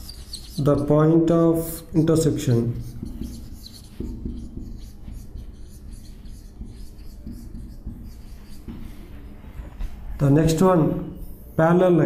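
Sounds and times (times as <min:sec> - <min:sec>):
marker pen writing on whiteboard: 0:00.0 - 0:11.5.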